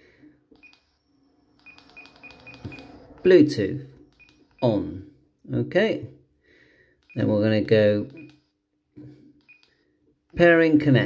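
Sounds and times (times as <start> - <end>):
short high key beeps: 0.6 - 3.1, 4.0 - 4.7.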